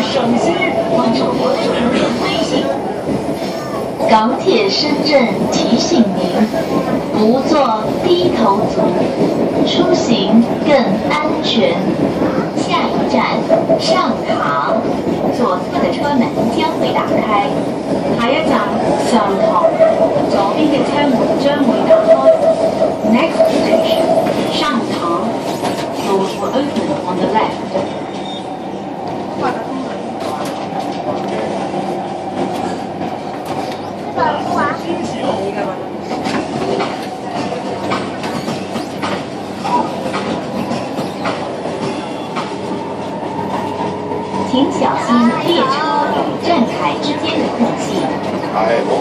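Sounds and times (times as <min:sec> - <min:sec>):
rail clicks: 0:00.0 - 0:49.0
rumble of train wheels and motors: 0:00.0 - 0:49.0.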